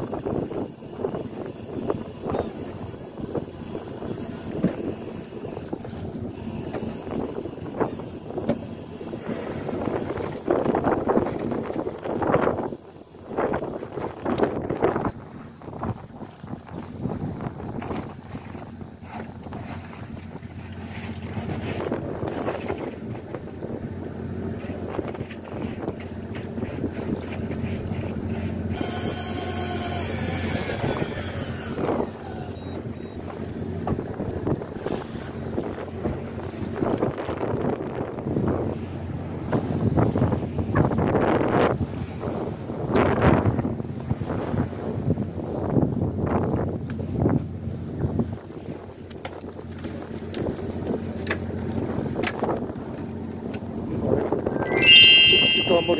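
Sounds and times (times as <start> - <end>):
wind buffeting microphone: 0.0 - 20.6, 30.3 - 49.4
boat engine humming: 0.0 - 37.0, 48.9 - 54.5
rough sea wash: 0.0 - 55.9
short sound sliding down in pitch: 54.5 - 55.9.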